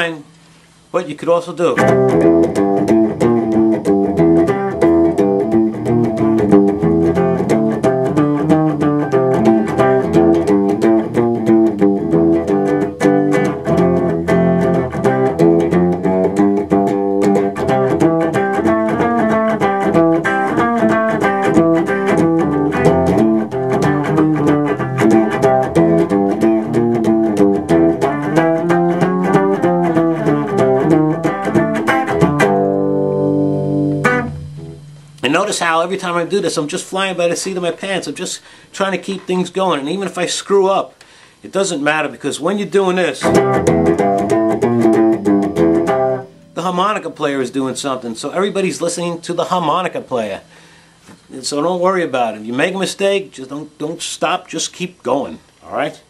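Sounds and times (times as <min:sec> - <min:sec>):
blues guitar playing: 0:01.6 - 0:38.2, 0:42.6 - 0:51.0.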